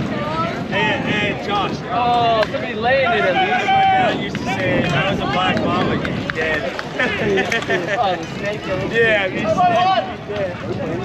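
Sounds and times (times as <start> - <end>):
men shouting: 3.0 - 5.4.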